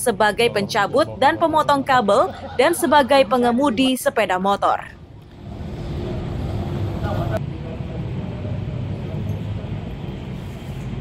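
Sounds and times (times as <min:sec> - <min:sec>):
low rumble of road traffic: 0:00.0 - 0:11.0.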